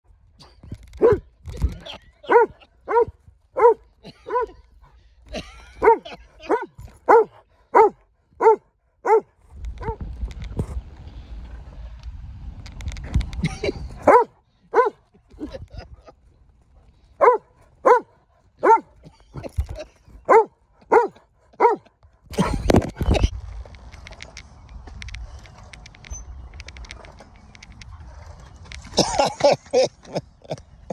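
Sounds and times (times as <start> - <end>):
dog barking: 1.0 - 1.2, 2.2 - 4.6, 5.8 - 10.0, 14.0 - 15.0, 17.2 - 19.0, 20.3 - 21.9
low rumbling noise: 22.3 - 29.1.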